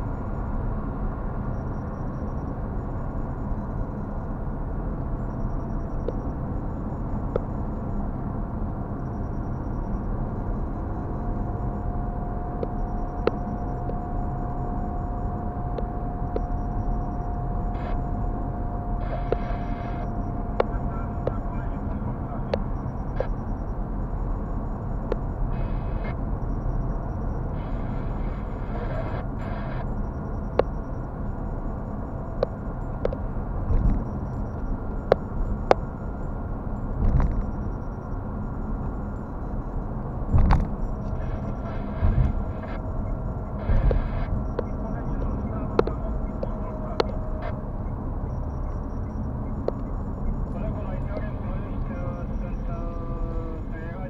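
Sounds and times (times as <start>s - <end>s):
car road and engine noise: 0.0s - 54.0s
light ticks and clicks: 43.7s - 47.6s.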